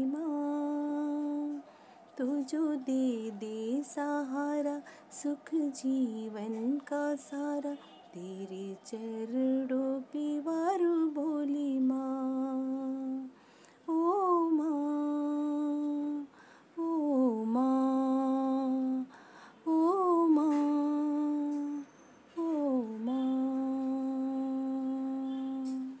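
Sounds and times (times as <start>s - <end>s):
person humming a melody: 9.5s - 19.1s, 19.7s - 21.8s, 22.4s - 26.0s.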